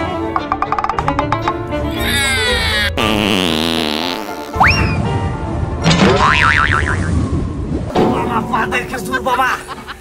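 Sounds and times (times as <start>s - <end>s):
background music: 0.0s - 10.0s
cartoon boing sound effect: 6.0s - 7.1s.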